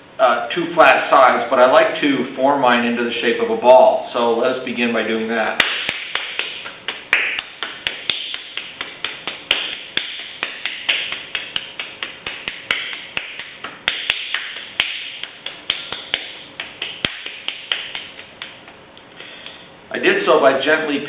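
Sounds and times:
hands slapping clay: 0:05.6 - 0:18.8.

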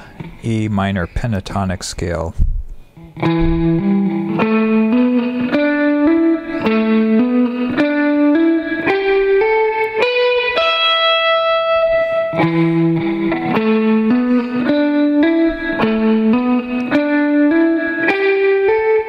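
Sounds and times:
electric guitar lick: 0:00.0 - 0:00.4, 0:02.7 - 0:19.0.

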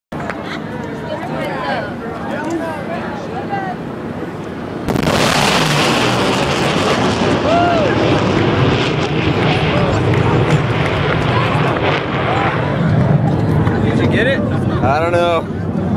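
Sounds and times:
jet engines roaring: 0:00.2 - 0:15.9
sonic boom: 0:04.8 - 0:13.2.

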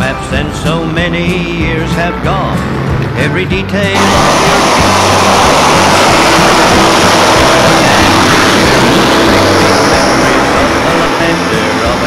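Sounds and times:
faint country music: 0:00.0 - 0:12.0
heavy truck passing: 0:02.4 - 0:12.0.

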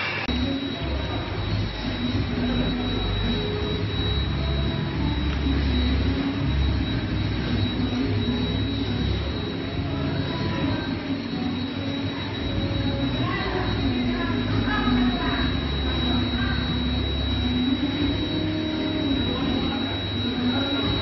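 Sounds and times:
machine running with low rumble: 0:00.0 - 0:21.0
thin high whine: 0:00.0 - 0:21.0.

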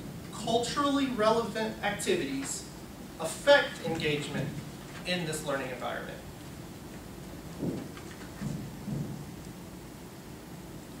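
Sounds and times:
faint low thuds: 0:07.0 - 0:09.4.

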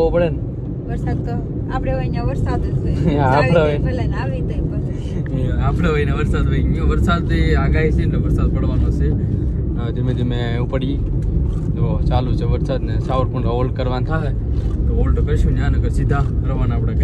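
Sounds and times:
people talking: 0:00.0 - 0:09.2, 0:09.8 - 0:11.0, 0:11.8 - 0:17.0
car engine rumble: 0:00.0 - 0:17.0
road noise: 0:00.0 - 0:17.0.

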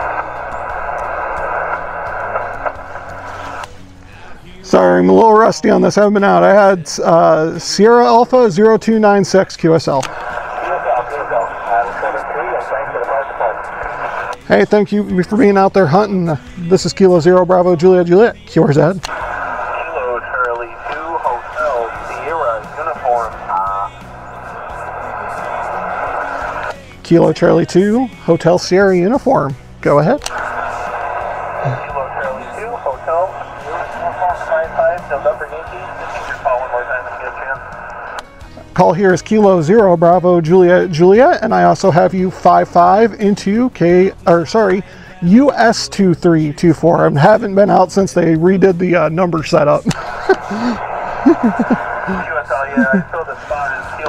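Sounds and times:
radio static: 0:00.0 - 0:03.8, 0:04.5 - 0:29.2, 0:30.0 - 0:43.6, 0:48.6 - 0:54.0
faint tinny radio voice: 0:10.0 - 0:15.4, 0:18.6 - 0:26.8, 0:30.3 - 0:38.2, 0:49.8 - 0:54.0.

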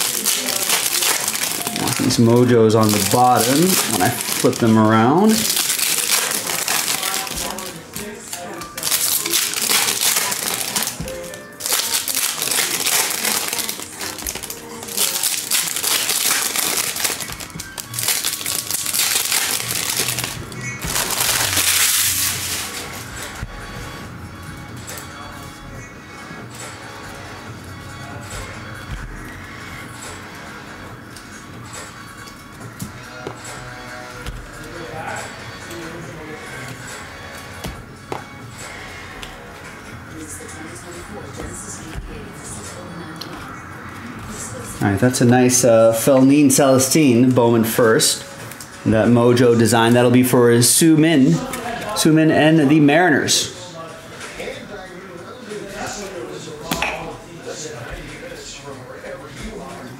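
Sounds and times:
foil wrappers crinkling and tearing: 0:00.0 - 0:23.4
faint background music: 0:00.0 - 0:59.9.

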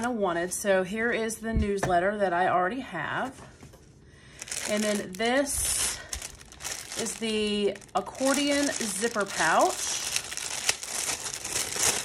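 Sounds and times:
plastic bag crinkling: 0:04.3 - 0:12.0.

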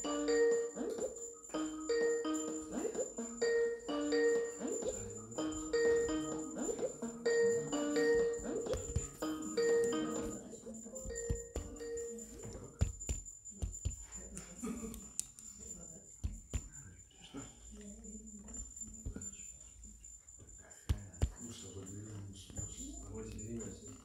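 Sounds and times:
looped electronic bell-like melody: 0:00.0 - 0:13.6.

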